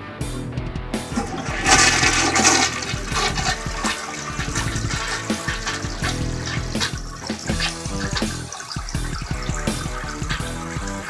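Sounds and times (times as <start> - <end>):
toilet flushing: 1.0 - 11.0.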